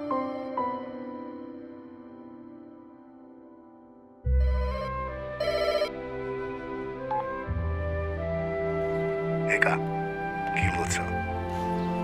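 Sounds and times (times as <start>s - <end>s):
mobile phone ringtone: 4.3s - 5.9s.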